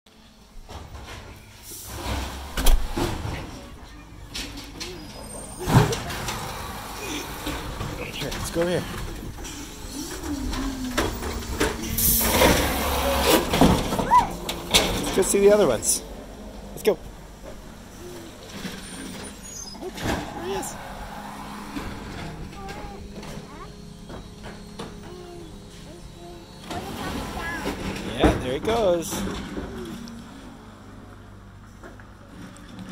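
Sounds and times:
garbage truck engine rumbling: 0.1 - 32.9.

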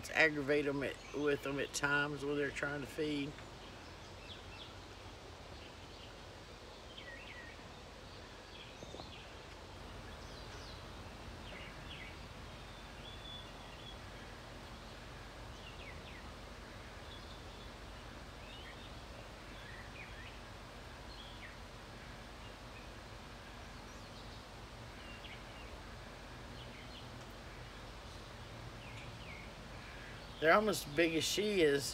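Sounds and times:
small birds chirping: 0.0 - 31.9.

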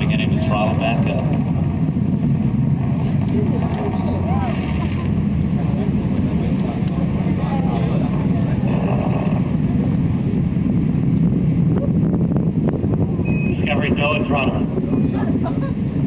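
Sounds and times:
distant rocket launch roar: 0.0 - 16.0.

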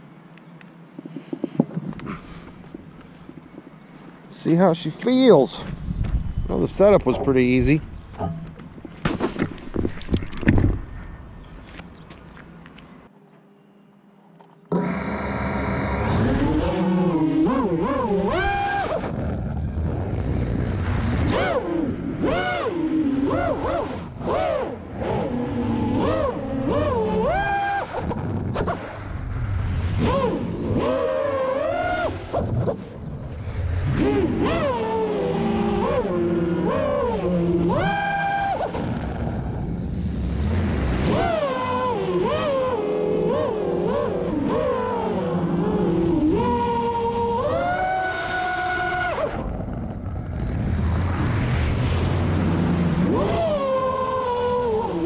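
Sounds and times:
quadcopter motors whining: 14.4 - 55.0.

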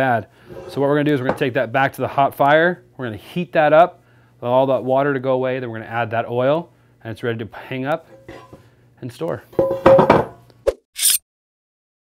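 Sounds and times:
skillet knocking on wooden board: 9.6 - 10.4.

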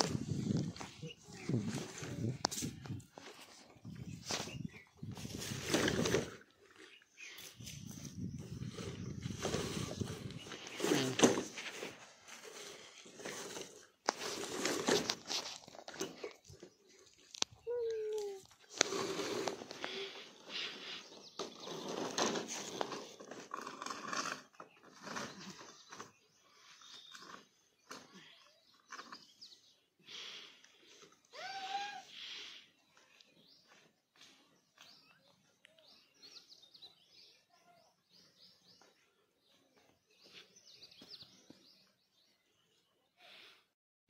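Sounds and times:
plastic pipes scraping and knocking: 8.3 - 17.5, 18.5 - 29.3.

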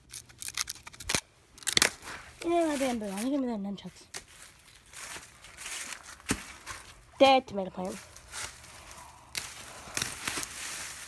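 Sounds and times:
dry leaves rustling and crackling: 0.1 - 7.1, 7.8 - 11.0.

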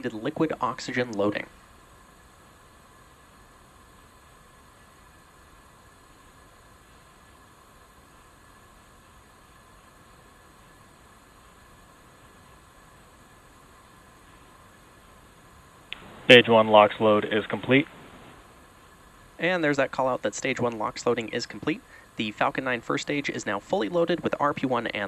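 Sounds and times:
faint high hum: 0.0 - 25.0
faint hiss: 0.0 - 25.0.

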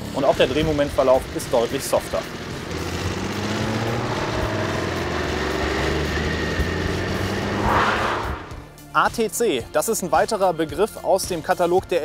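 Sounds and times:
motorcycle engine running: 0.0 - 7.7
brief rush of noise: 7.4 - 8.7.

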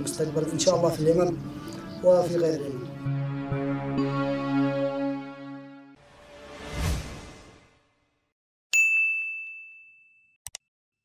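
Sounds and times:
rushing swoosh: 6.1 - 7.8
bright bell-like ding: 8.8 - 10.4.

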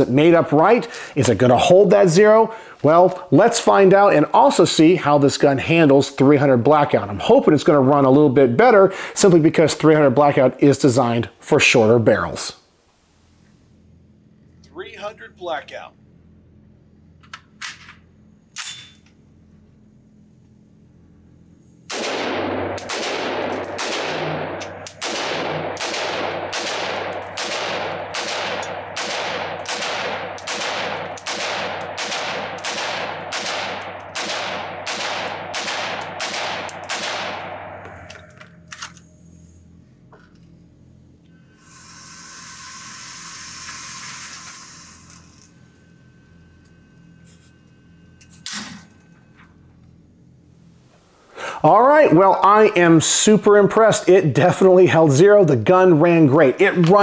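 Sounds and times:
gunshots echoing indoors: 21.9 - 38.1.

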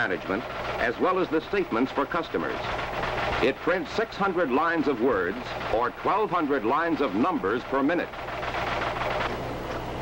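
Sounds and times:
line printer clattering: 0.0 - 10.0.

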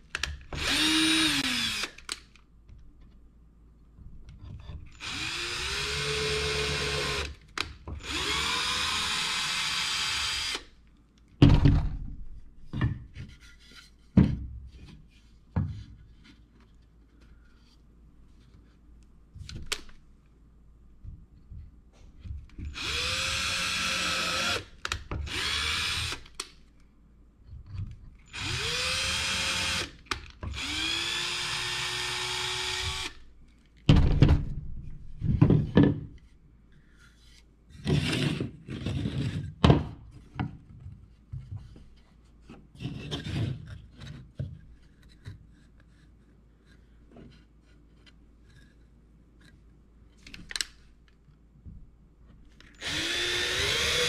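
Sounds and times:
cordless drill into wood: 0.6 - 2.1, 5.0 - 7.3, 8.0 - 10.7, 22.7 - 26.3, 28.3 - 33.2, 52.8 - 54.0.

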